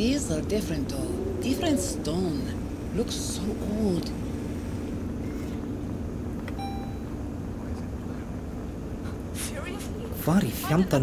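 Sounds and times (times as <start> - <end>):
steady low machine hum: 0.0 - 11.0
short electronic beep: 6.6 - 7.1.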